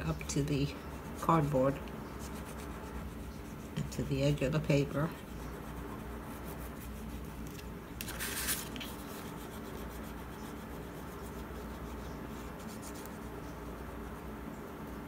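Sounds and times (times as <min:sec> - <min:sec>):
faint low hum: 0:00.0 - 0:15.0
hand rubbing paper: 0:00.0 - 0:15.0.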